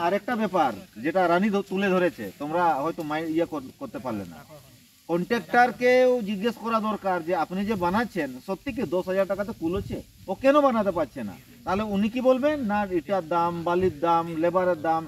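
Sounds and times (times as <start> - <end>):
man talking: 0.0 - 15.0.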